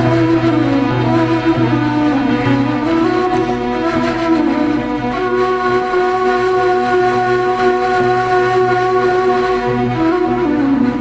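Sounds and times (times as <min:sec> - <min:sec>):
low sustained drone: 0:00.0 - 0:10.2
cane flute long note: 0:00.0 - 0:11.0.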